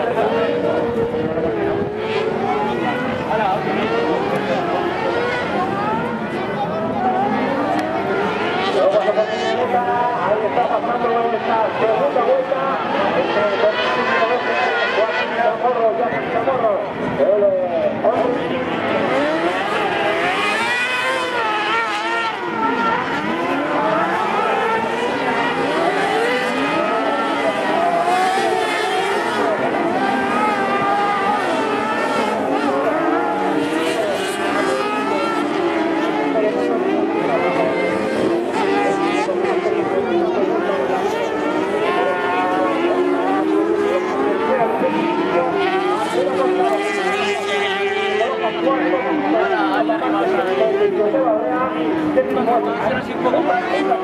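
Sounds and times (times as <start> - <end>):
buggy engines revving: 0.0 - 54.0.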